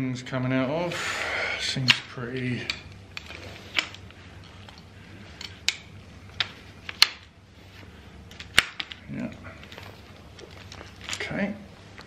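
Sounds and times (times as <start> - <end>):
chair poles clicking and knocking: 1.9 - 7.3, 8.3 - 11.4.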